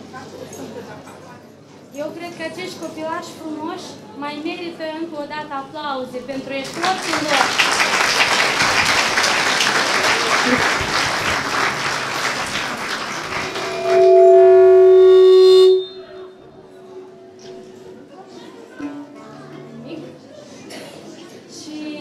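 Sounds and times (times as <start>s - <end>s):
audience applauding: 6.6s - 14.6s
loud steady pitched tone: 13.2s - 18.1s.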